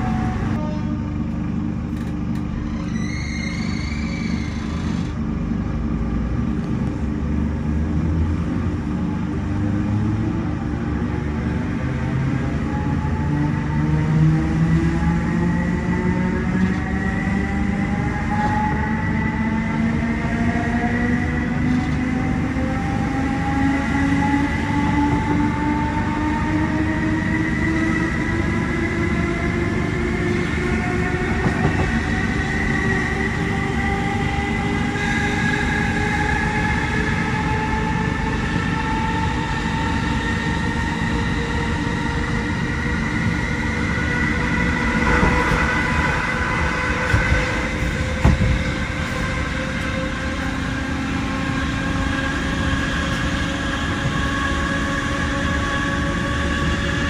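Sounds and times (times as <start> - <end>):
train traction motor whine: 0.0 - 57.0
wheels rumbling on rail: 0.0 - 57.0.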